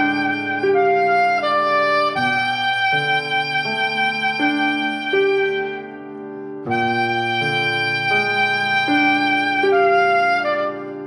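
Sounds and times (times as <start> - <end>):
piano: 0.0 - 11.0
saxophone section chords: 6.6 - 11.0.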